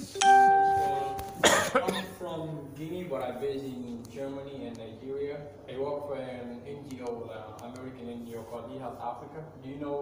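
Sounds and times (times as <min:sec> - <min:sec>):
chime ringing: 0:00.2 - 0:01.4.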